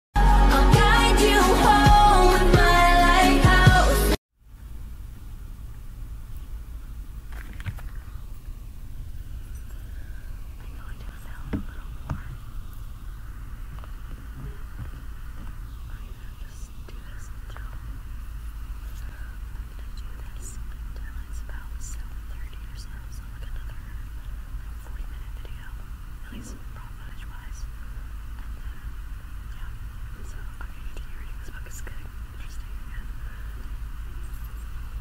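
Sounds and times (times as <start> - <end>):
steady low hum: 0.2 - 35.0
soft whispering: 9.4 - 12.8, 14.2 - 18.2, 18.8 - 35.0.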